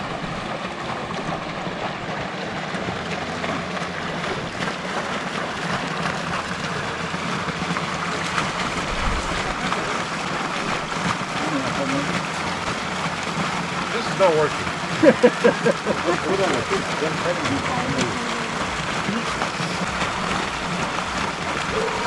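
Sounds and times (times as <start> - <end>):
water spout splashing into pond: 0.0 - 22.0.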